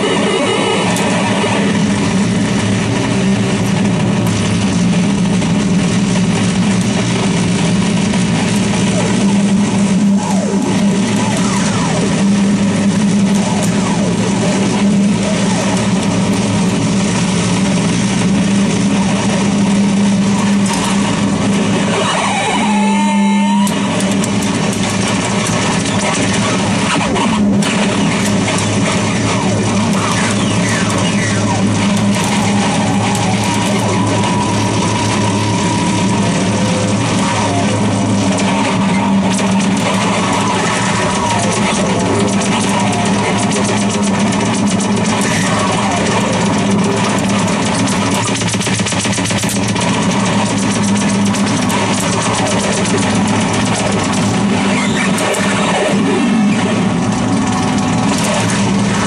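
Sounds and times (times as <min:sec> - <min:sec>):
distorted noise wall: 0:00.0 - 0:59.0
sliding filtered tones: 0:00.0 - 0:59.0
steady low drone: 0:00.0 - 0:59.0.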